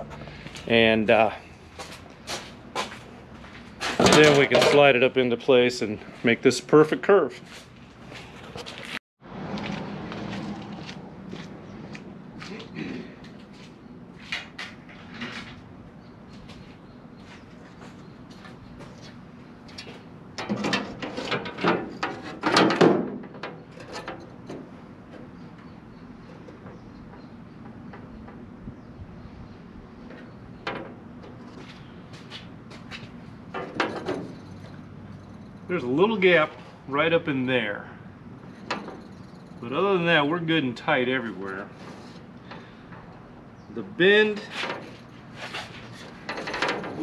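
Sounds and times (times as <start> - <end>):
sheet metal knocks and rattles: 20.4 - 24.7, 46.2 - 47.0.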